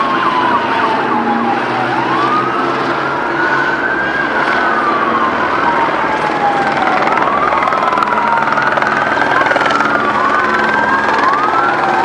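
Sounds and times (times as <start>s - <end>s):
emergency sirens wailing: 0.0s - 12.0s
loud steady din: 0.0s - 12.0s.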